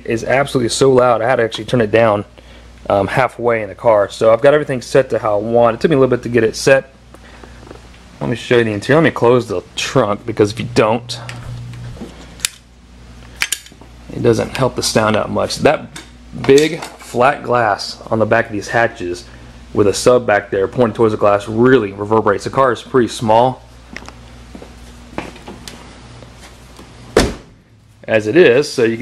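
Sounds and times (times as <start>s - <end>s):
low steady hum: 0.0s - 29.0s
car hatch slamming: 27.2s - 27.6s.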